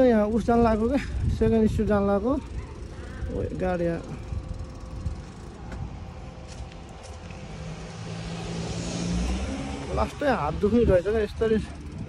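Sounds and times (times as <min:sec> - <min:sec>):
wind rumble on microphone: 0:00.0 - 0:12.0
vehicle engine running: 0:02.1 - 0:12.0.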